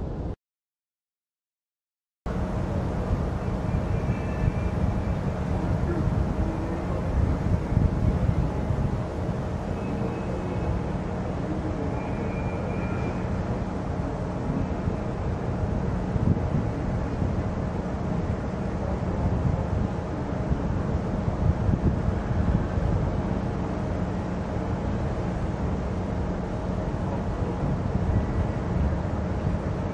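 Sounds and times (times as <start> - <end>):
wind buffeting microphone: 2.9 - 11.3, 14.1 - 24.2, 26.2 - 29.9.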